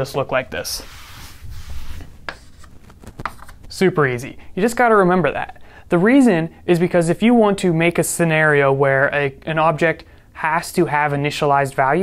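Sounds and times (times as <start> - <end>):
chalk rubbed off chalkboard: 0.6 - 2.7
chalk writing scratches: 0.7 - 3.5.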